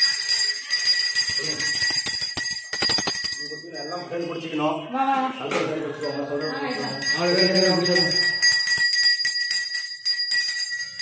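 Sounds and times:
hand bell ringing rapidly: 0:00.0 - 0:04.1, 0:06.4 - 0:11.0.

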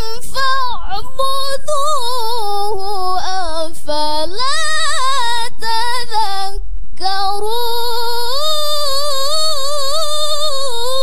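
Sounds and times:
woman reciting melodically: 0:00.0 - 0:11.0.

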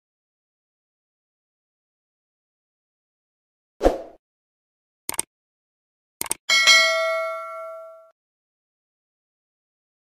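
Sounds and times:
notification bell ding: 0:06.5 - 0:08.1.

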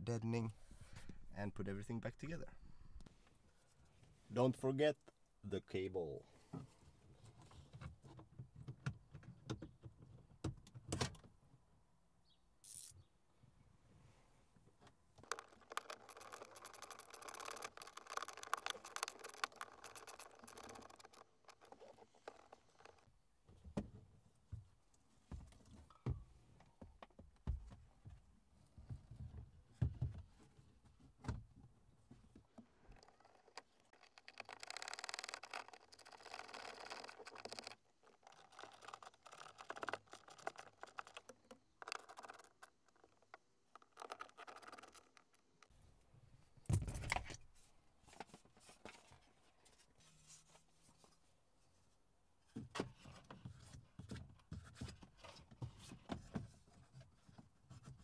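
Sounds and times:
plastic trim scraping and rustling: 0:15.2 - 0:23.1, 0:32.6 - 0:45.7.

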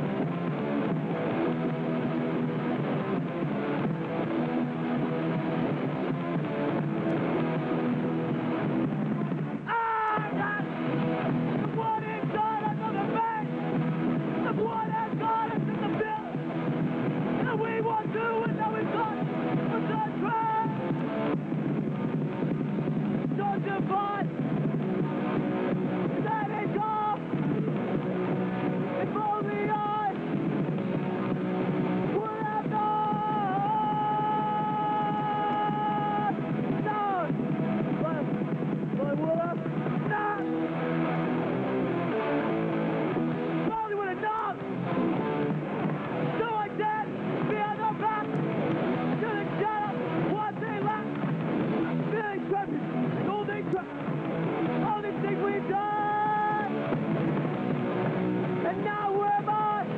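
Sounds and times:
punk band playing live: 0:00.0 - 0:59.9.

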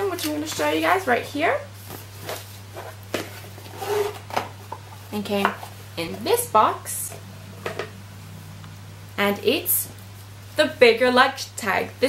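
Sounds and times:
steady low hum: 0:00.0 - 0:12.0
paper and cardboard rustling: 0:01.8 - 0:04.8.

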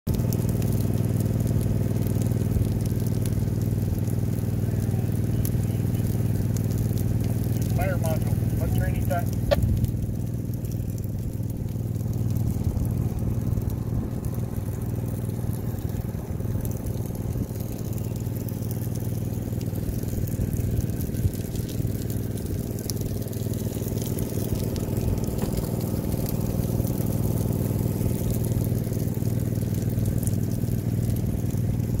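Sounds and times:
vehicle engine running: 0:00.1 - 0:32.0.

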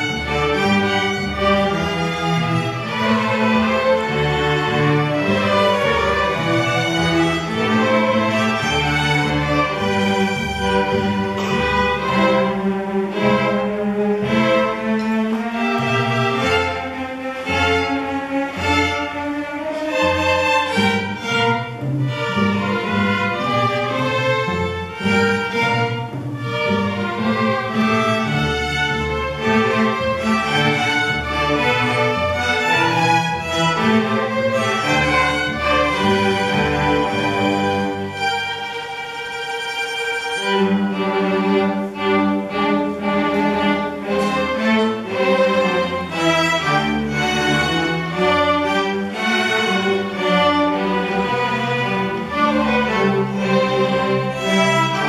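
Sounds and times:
string orchestra playing: 0:00.0 - 0:55.0.

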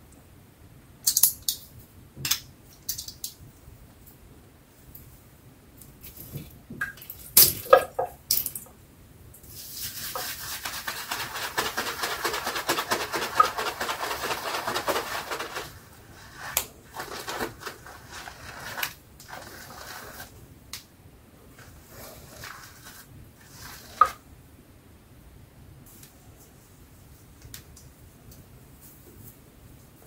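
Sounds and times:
brush bristles swirling on soap: 0:09.5 - 0:20.4, 0:21.5 - 0:24.2.

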